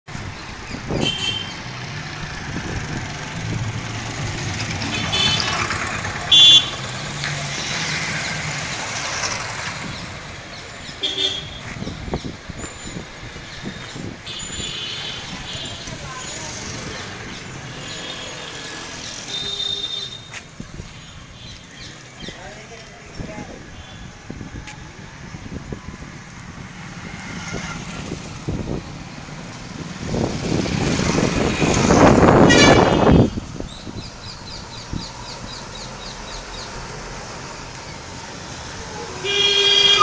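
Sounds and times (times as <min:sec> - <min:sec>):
motorcycle engines passing: 0:00.2 - 0:40.0.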